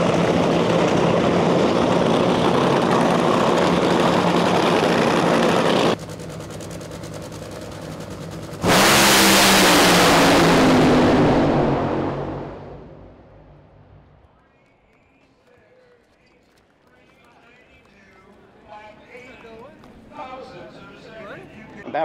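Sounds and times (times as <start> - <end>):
drag racing engine droning: 0.0 - 14.2
drag car launching blast: 8.6 - 13.4.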